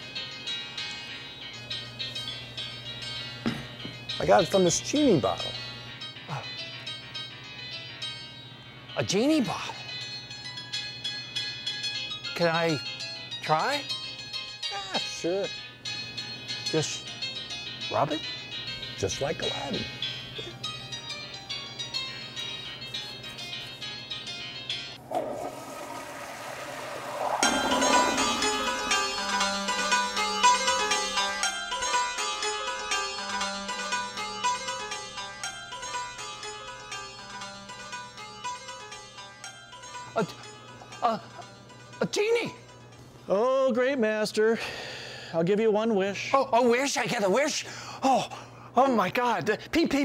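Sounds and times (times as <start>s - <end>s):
plucked-string film music: 10.0s - 43.1s
rushing whoosh: 26.1s - 29.3s
tinkly piano music: 27.4s - 43.0s.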